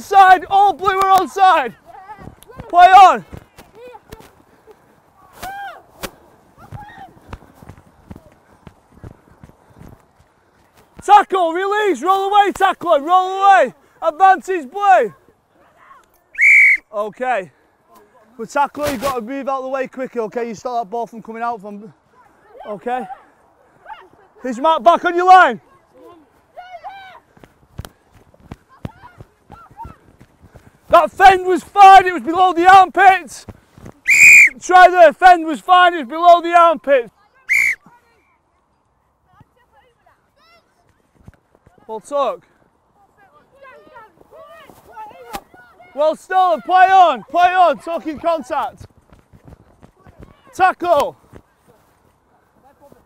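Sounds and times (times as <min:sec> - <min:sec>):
faint distant shouts: 0:00.0 - 0:08.7
running footsteps on grass: 0:00.0 - 0:16.0, 0:17.4 - 0:53.0
faint high-pitched shouts: 0:05.2 - 0:06.0, 0:06.6 - 0:07.3, 0:22.1 - 0:24.4, 0:25.6 - 0:27.3, 0:34.0 - 0:34.6, 0:37.2 - 0:38.3.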